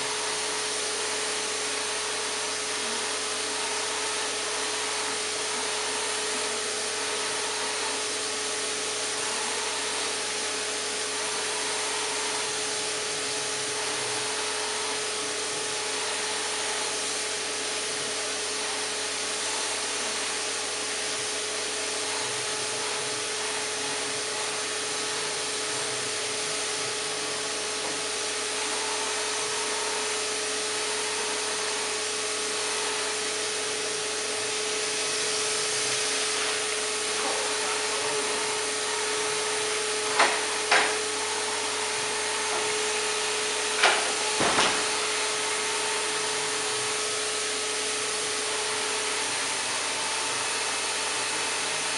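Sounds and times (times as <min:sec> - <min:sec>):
paint spray gun hiss and whine: 0:00.0 - 0:51.9.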